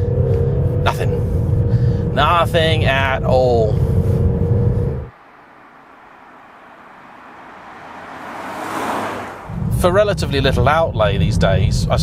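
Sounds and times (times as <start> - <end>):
car tyre and road noise: 0.0 - 12.0.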